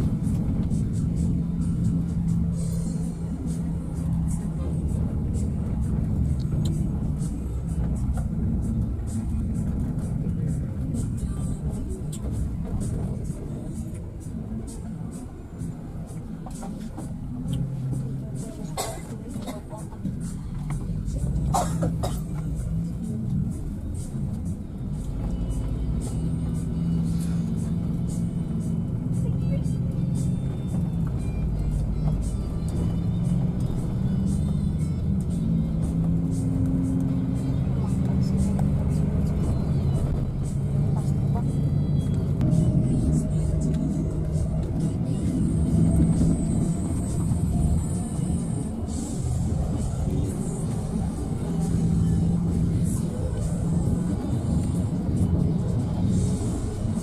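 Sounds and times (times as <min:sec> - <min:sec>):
bus engine and road rumble: 0:00.0 - 0:57.0
music: 0:00.0 - 0:57.0
voices: 0:28.7 - 0:30.6.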